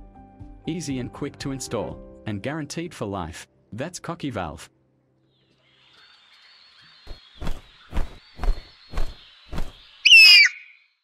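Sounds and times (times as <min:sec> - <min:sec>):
cockatoo screech: 0:10.0 - 0:10.8.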